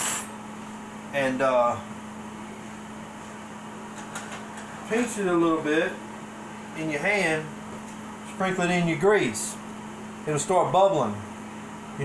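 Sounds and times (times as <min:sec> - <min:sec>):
appliance hum with hiss: 0:00.0 - 0:12.0.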